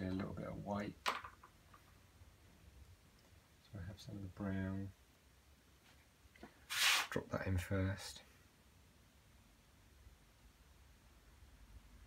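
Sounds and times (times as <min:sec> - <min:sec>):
short loud hiss: 0:06.6 - 0:07.2.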